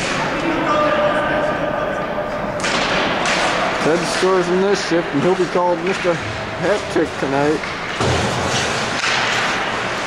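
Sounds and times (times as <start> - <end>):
sticks and skates scraping ice: 5.1 - 10.0.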